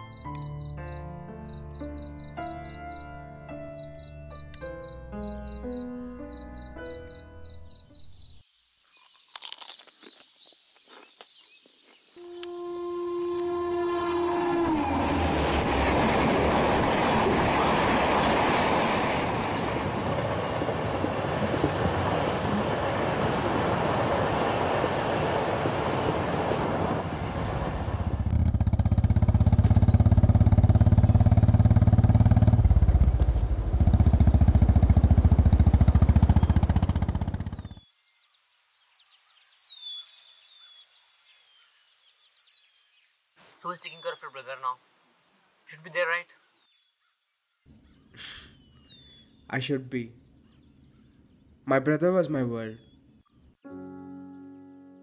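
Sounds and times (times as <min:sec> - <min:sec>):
train horn sliding down: 0:12.2 - 0:16.1
train running noise: 0:13.6 - 0:28.3
heavy low rumble: 0:25.6 - 0:37.8.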